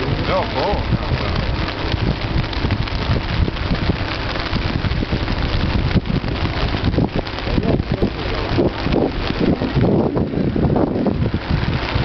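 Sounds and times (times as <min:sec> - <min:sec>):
river water rushing: 0:00.0 - 0:12.0
wind buffeting microphone: 0:00.0 - 0:12.0.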